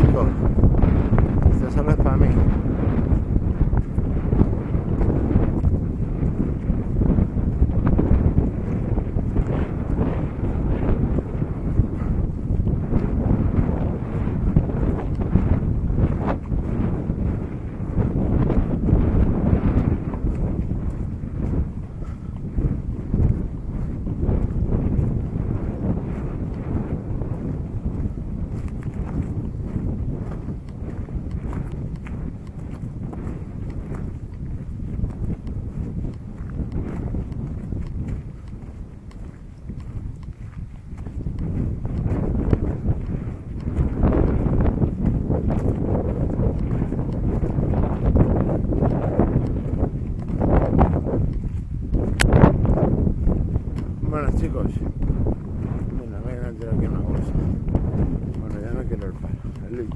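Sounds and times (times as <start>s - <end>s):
wind buffeting microphone: 0.0s - 59.9s
footsteps crunching on stones: 18.2s - 59.9s.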